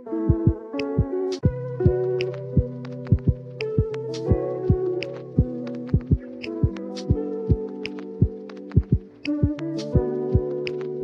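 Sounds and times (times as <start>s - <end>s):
mellow keyboard chords: 0.0s - 11.0s
deep kick drums: 2.6s - 6.8s, 8.2s - 10.1s.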